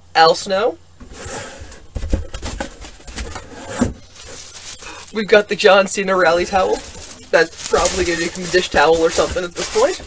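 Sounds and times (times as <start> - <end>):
cardboard box rubbing and scraping: 1.0 - 5.1, 6.2 - 10.0.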